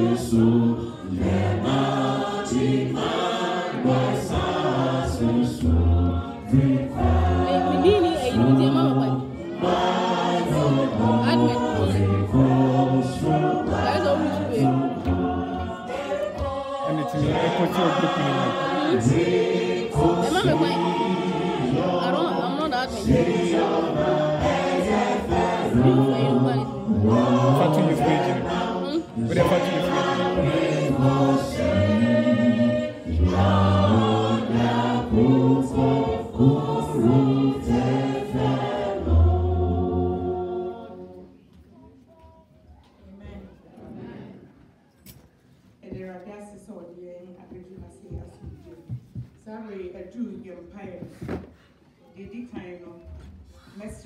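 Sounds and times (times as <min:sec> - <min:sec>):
choir singing a hymn: 0:00.0 - 0:41.6, 0:43.8 - 0:44.6.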